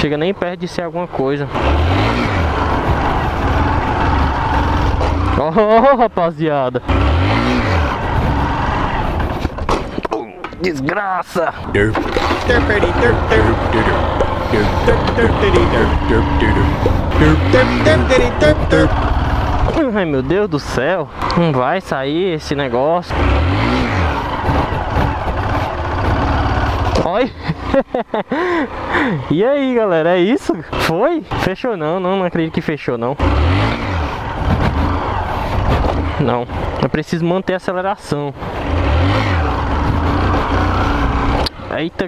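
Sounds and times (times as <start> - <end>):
motorcycle engine running at low revs: 1.5 - 6.0, 6.8 - 9.7, 12.0 - 20.3, 23.1 - 29.1, 33.2 - 36.8, 38.5 - 41.6
short voice-like sounds: 11.6 - 19.0.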